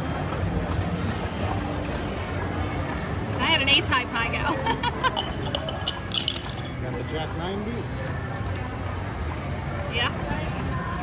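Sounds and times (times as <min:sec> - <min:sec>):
background music: 0:00.0 - 0:11.0
casino chips clinking: 0:05.1 - 0:06.8.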